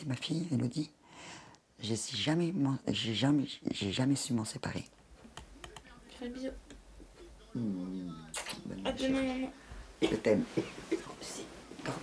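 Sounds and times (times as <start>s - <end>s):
murmured voice: 7.2s - 9.6s.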